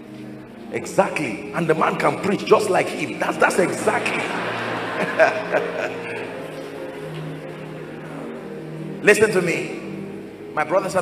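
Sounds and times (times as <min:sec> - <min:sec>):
held low music chord: 0:00.0 - 0:11.0.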